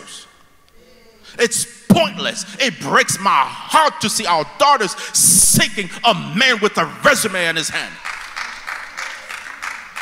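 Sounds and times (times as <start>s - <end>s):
congregation applauding: 7.8s - 10.0s.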